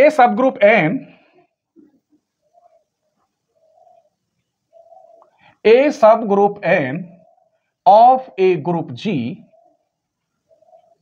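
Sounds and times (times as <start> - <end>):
man talking: 0.0 - 1.2, 5.7 - 7.2, 7.9 - 9.5
bird cooing: 1.2 - 5.6, 7.1 - 7.8, 9.4 - 11.0.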